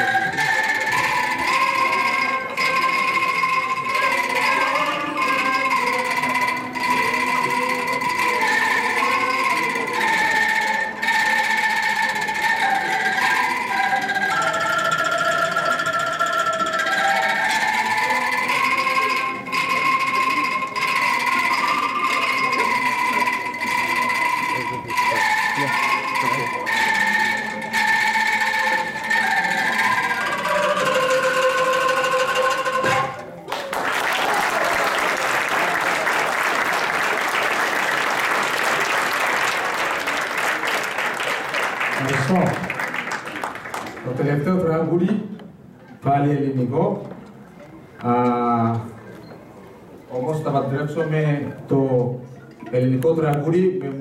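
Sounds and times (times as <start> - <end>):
bamboo rattle ensemble melody: 0.0 - 44.5
audience applause: 33.5 - 44.2.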